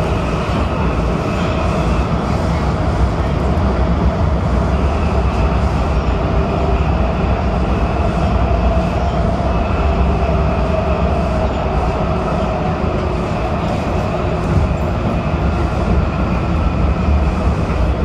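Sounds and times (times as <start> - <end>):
subway wheels rumbling on rail: 0.0 - 18.0.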